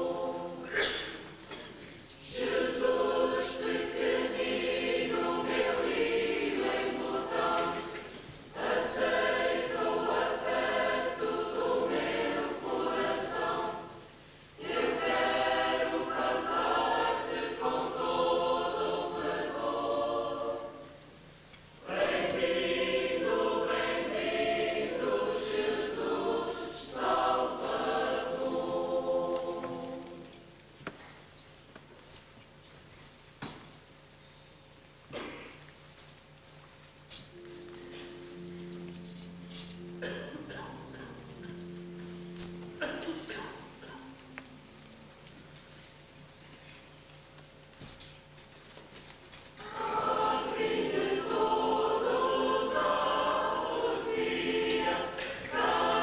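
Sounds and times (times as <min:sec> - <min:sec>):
church choir singing a hymn: 0:00.0 - 0:31.0, 0:37.3 - 0:44.7, 0:49.6 - 0:56.0.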